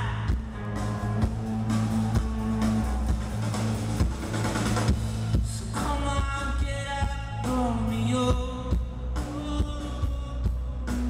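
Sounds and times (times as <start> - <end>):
bass guitar: 0.0 - 11.0.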